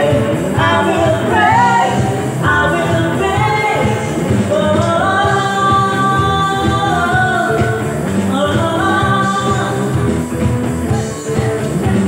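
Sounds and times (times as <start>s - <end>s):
electric bass: 0.0s - 12.0s
electronic drum pad beat: 0.0s - 12.0s
keyboard: 0.0s - 12.0s
person singing: 0.0s - 12.0s.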